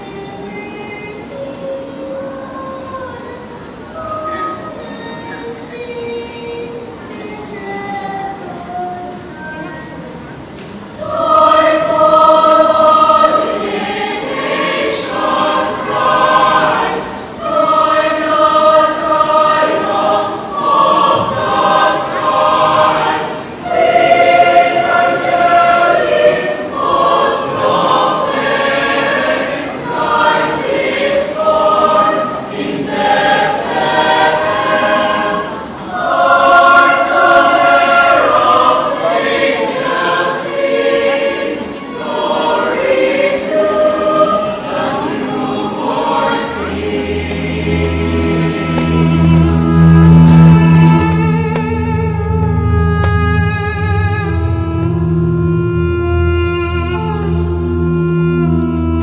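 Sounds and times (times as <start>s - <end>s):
youth choir singing: 0.0s - 52.6s.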